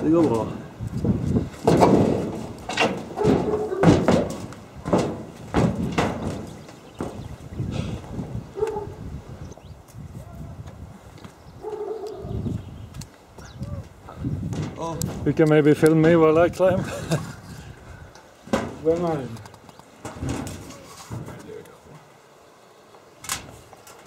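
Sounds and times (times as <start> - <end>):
footsteps on sheet-metal roof: 0.0 - 8.4, 9.8 - 16.7, 18.4 - 22.1.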